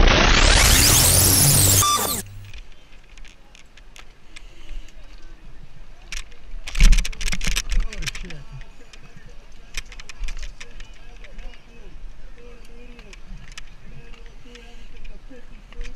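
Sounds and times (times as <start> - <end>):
scattered clicks: 0.0 - 4.5, 9.7 - 11.6
outdoor ambience: 0.0 - 15.9.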